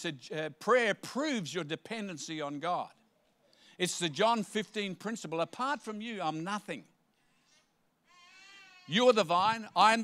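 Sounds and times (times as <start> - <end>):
man speaking: 0.0 - 3.0, 3.8 - 6.9, 8.9 - 10.0
high-pitched wavering cry: 8.1 - 9.0.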